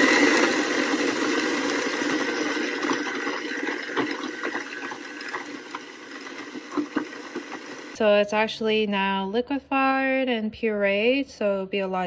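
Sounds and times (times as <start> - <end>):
blender running: 0.0 - 8.0.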